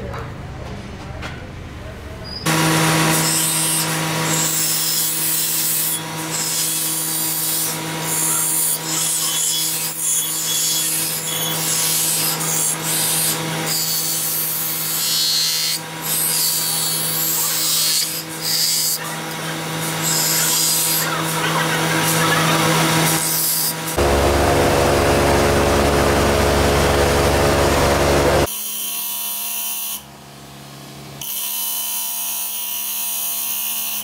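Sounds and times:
grinding wheel humming: 0:02.5 - 0:28.5.

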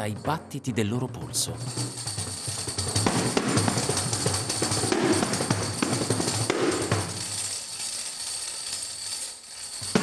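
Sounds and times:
frame drum jingles rattling: 0:00.0 - 0:10.0.

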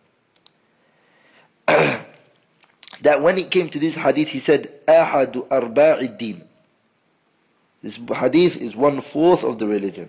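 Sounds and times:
soft breath in: 0:00.8 - 0:01.6
man coughing: 0:01.7 - 0:02.2
mouth clicks: 0:02.1 - 0:03.1.

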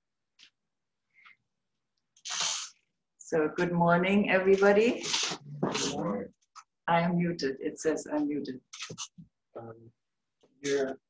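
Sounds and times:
person sniffing: 0:02.2 - 0:02.9.

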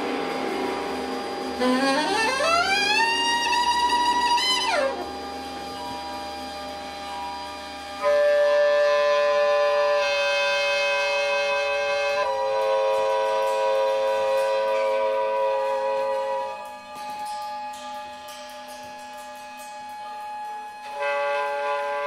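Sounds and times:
saxophone multiphonic chord: 0:00.0 - 0:22.0
soprano saxophone improvising: 0:01.6 - 0:05.3.

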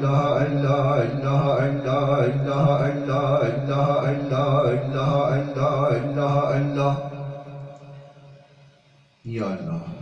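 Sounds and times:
man chanting into a microphone: 0:00.0 - 0:07.6.

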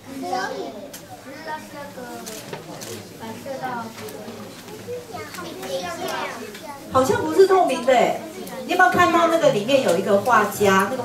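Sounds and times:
children calling out: 0:00.0 - 0:01.9, 0:04.8 - 0:06.9.

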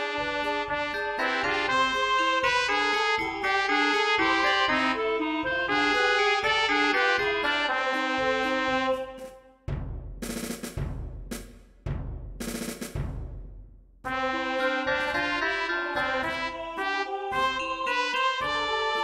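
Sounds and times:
synthesized brass melody with chords: 0:00.0 - 0:09.4, 0:14.1 - 0:19.0.

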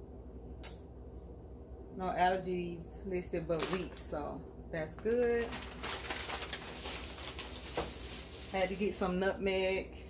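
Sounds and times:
paper bags rustling: 0:03.6 - 0:04.2, 0:05.0 - 0:10.0.

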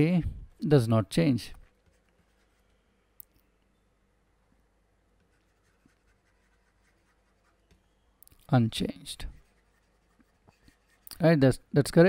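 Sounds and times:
stylus writing on a tablet: 0:05.2 - 0:07.8, 0:09.4 - 0:11.0.

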